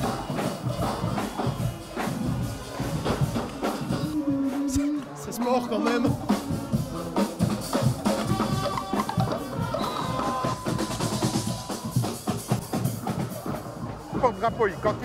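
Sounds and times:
bass drum and snare drumming: 0.0s - 4.9s, 5.9s - 15.0s
carnival band playing: 0.0s - 15.0s
held horn notes: 5.8s - 12.6s.

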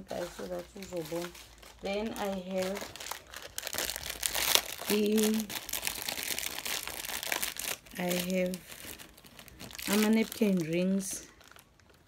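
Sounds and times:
packaging crinkling and rustling: 0.0s - 12.0s.

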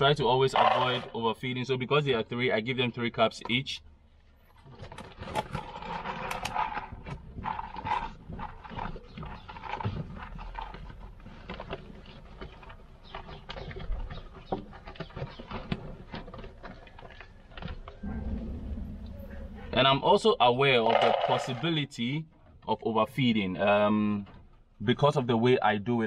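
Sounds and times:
rabbit crunching feed pellets: 4.5s - 18.4s.

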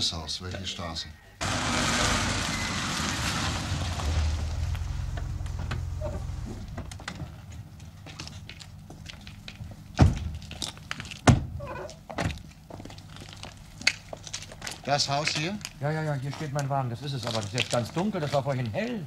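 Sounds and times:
tyres hissing on wet street: 1.4s - 6.8s
car doors slamming: 1.4s - 7.4s
car engine: 1.4s - 8.1s.

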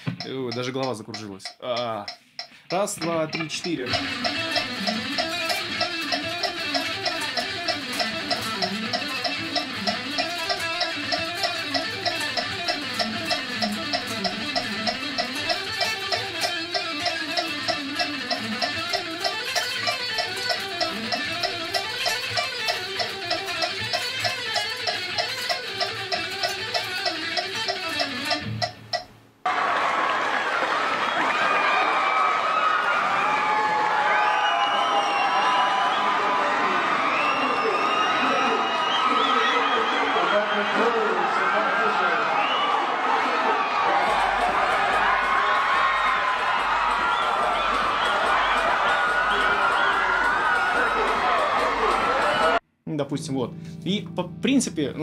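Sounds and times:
metronome clicking: 0.0s - 29.3s, 43.8s - 55.0s
crowd cheering: 0.0s - 52.6s
electric guitar fast runs: 3.0s - 29.0s.

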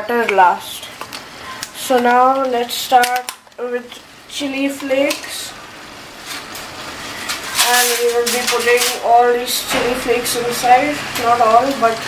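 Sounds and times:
person speaking: 7.6s - 12.0s.

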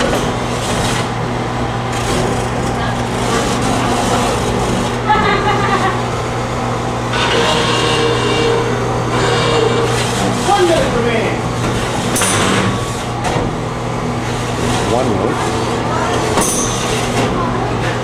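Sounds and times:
small electric motors running: 1.9s - 6.0s
metal scrape: 7.2s - 10.5s
people talking: 10.4s - 11.4s, 14.9s - 16.4s.

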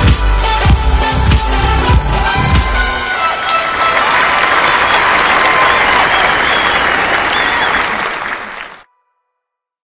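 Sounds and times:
crowd applauding and cheering: 1.8s - 8.8s.

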